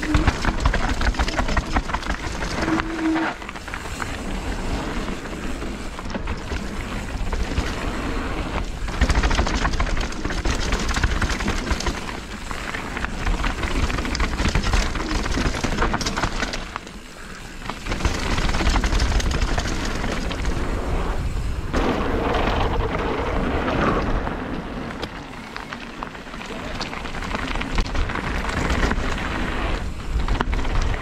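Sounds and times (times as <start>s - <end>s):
clicks and rattles: 0.0s - 2.9s, 8.8s - 16.9s
bike rattling: 0.0s - 31.0s
wind rumble on microphone: 17.8s - 31.0s
tyres crunching over gravel: 22.2s - 31.0s.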